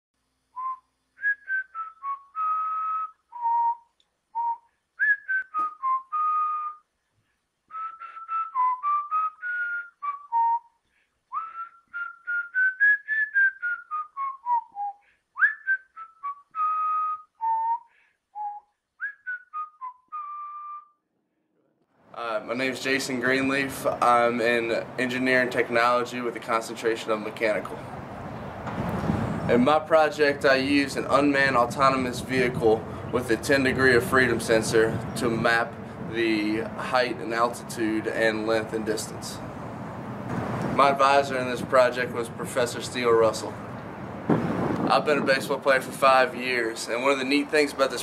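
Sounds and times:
person whistling a tune: 0.6 - 6.9, 7.7 - 21.0.

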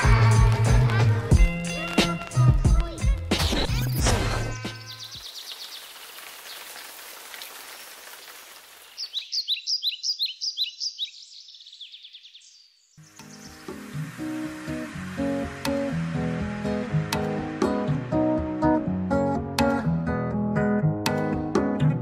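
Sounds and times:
songbird chirping: 4.6 - 15.2
rain falling on water: 5.1 - 9.3, 13.6 - 17.2
acoustic guitar music: 13.0 - 22.0.

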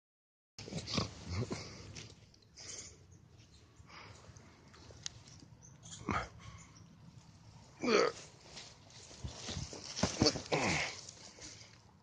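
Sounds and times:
low grunts: 0.6 - 1.9, 5.9 - 6.5, 7.8 - 8.3, 10.0 - 11.1.

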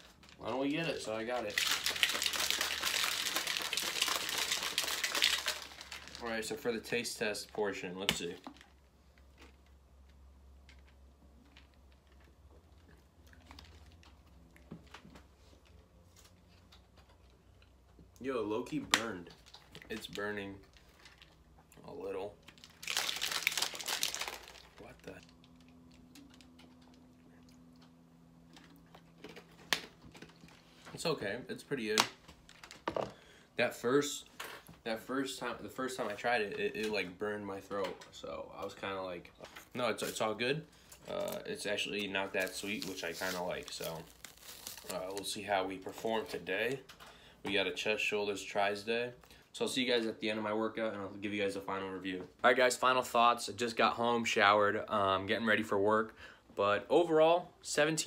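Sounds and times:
faint low hum: 0.0 - 58.0.

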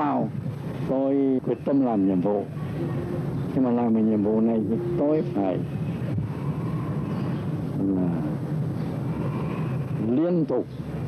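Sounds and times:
low background rumble: 0.0 - 11.0
man's voiced hesitation: 2.4 - 5.7.

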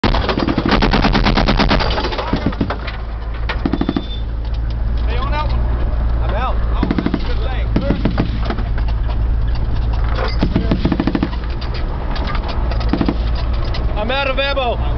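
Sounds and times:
machine gun bursts: 0.0 - 2.9, 3.6 - 4.2, 10.4 - 11.5, 12.9 - 13.5
vehicle engine running: 0.0 - 14.9.

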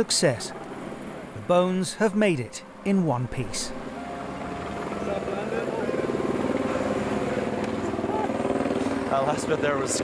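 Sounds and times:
helicopter rotor beating: 3.3 - 10.0.

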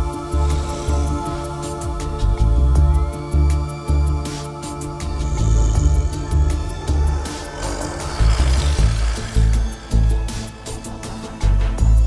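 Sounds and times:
sustained synthesizer chords: 3.8 - 12.0
rush of noise: 4.7 - 11.5
deep synthesizer bass pulses: 5.1 - 10.4.

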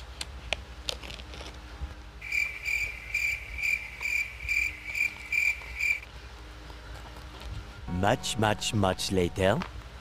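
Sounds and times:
cricket chirping: 2.2 - 6.0.

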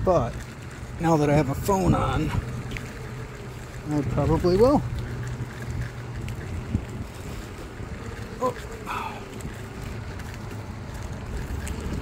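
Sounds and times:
skateboard wheels rumbling on dirt: 0.0 - 12.0
wind buffeting microphone: 0.0 - 12.0.

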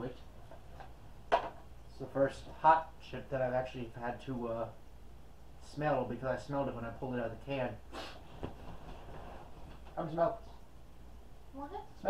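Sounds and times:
clothing and cushions rustling: 8.0 - 10.3.

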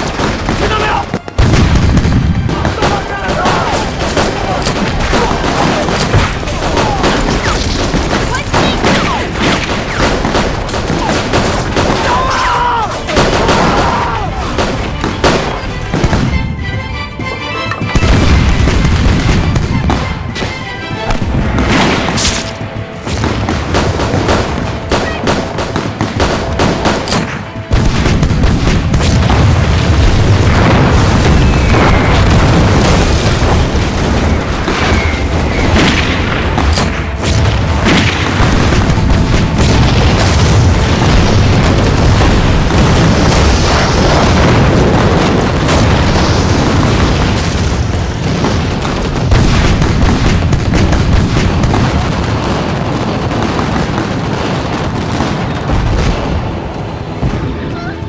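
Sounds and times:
action film music: 0.0 - 54.1, 54.7 - 58.0
booms and explosions: 0.0 - 58.0.

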